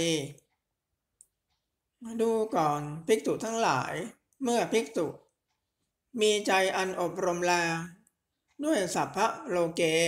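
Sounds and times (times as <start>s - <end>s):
person reading aloud: 0.0s - 0.6s, 1.9s - 10.0s.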